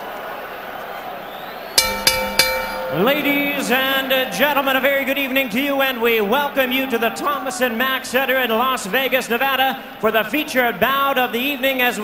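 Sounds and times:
boxing ring bell: 1.8 - 3.8.

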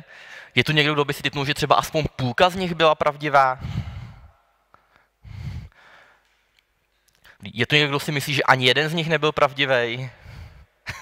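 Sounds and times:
breathing into microphone: 0.0 - 0.6, 3.6 - 6.5, 10.1 - 10.8.

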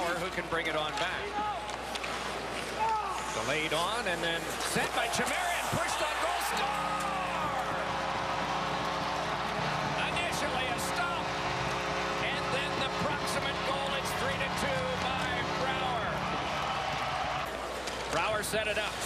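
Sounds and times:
crowd cheering: 0.0 - 19.0
arena goal horn blast: 5.2 - 17.4.

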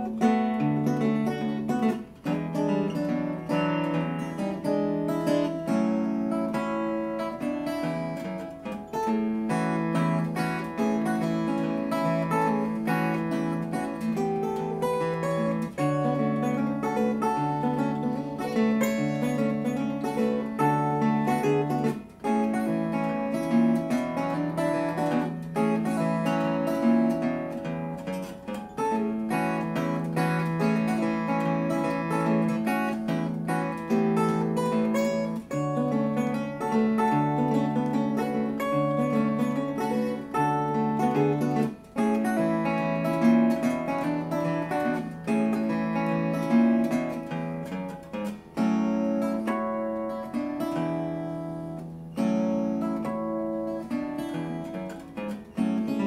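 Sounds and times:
fingerpicked acoustic guitar: 0.0 - 56.0.

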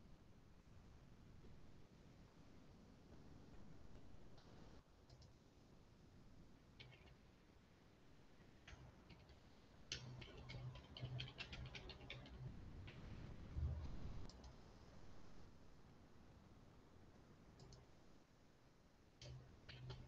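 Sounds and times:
keyboard typing: 9.1 - 13.2.

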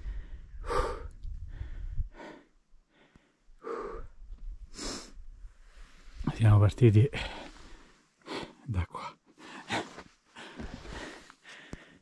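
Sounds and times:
wind rumble on microphone: 0.0 - 2.2
person breathing hard: 0.0 - 5.2, 7.2 - 8.7, 9.3 - 12.0.

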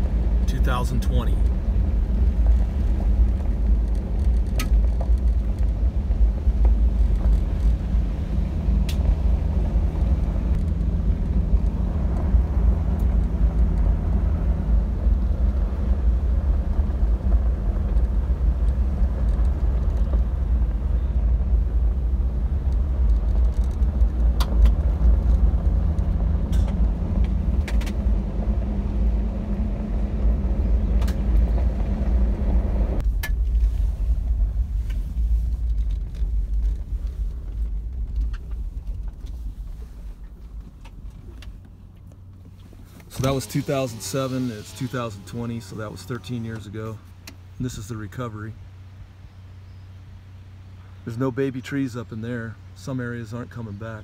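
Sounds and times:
gravel clicks: 0.0 - 48.2
higher road noise: 0.0 - 54.0
vehicle rumble on gravel road: 0.0 - 54.0.

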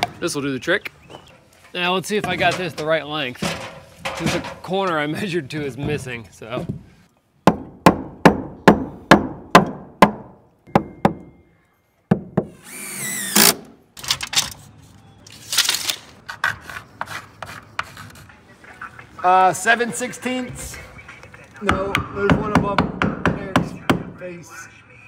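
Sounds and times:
hammer striking wood: 7.4 - 11.3, 21.6 - 24.1.

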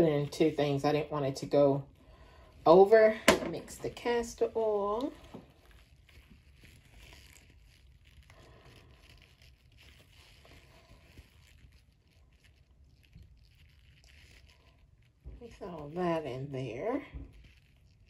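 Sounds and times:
thin trickle of oil pouring: 5.2 - 15.4.

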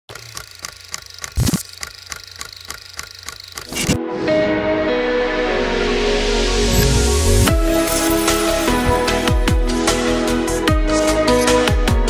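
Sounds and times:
film projector clicking: 0.1 - 4.0.

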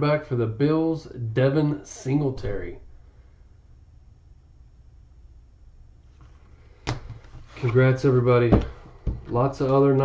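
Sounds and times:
faint low room noise: 0.0 - 10.0.

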